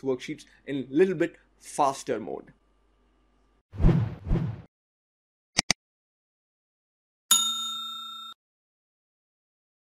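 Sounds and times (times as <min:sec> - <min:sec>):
bell-like ding: 0:07.3 - 0:08.4.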